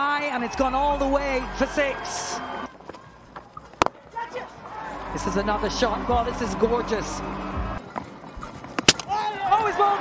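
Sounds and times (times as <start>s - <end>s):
cricket ball hitting stumps: 8.8s - 9.1s.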